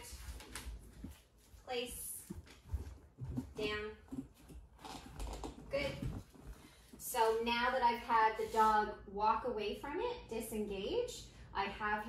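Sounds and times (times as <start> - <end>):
dog footsteps on tile: 0.0 - 6.8.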